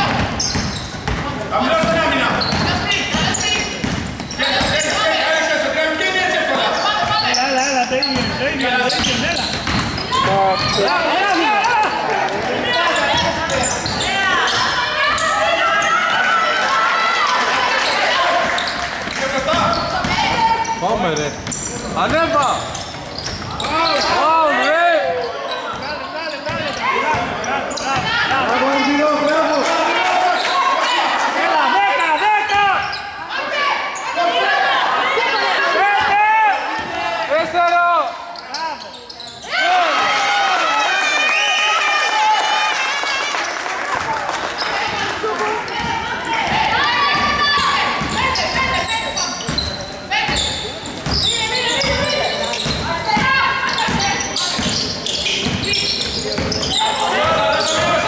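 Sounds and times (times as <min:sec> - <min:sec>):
basketball bouncing on hardwood floor: 0:00.1 - 0:04.8, 0:08.2 - 0:10.7
voices calling out: 0:44.4 - 0:58.0.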